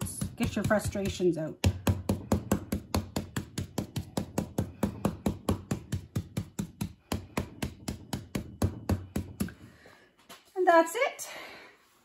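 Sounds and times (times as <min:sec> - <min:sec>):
stencil brush dabbing taps: 0:00.0 - 0:09.6.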